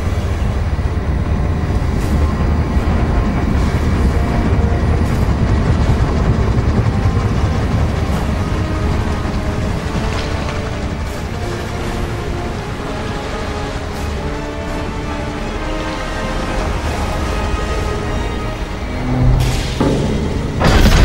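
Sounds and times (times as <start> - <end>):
faint orchestral music: 0.0 - 21.0
deep underwater propeller rumble: 1.9 - 13.9.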